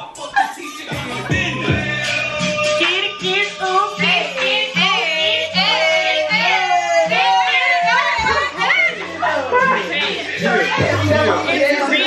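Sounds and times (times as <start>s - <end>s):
people talking over one another: 5.4s - 12.0s.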